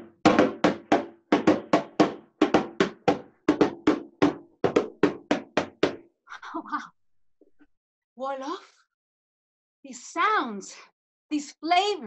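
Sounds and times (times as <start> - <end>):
hand drum beats: 0.0 - 6.0.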